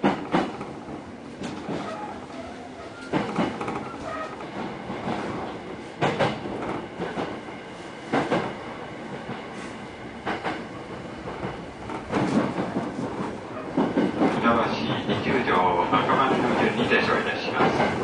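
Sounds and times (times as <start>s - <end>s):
train rumble inside carriage: 0.0s - 18.0s
wheels clickety-clack on rail joints: 0.0s - 18.0s.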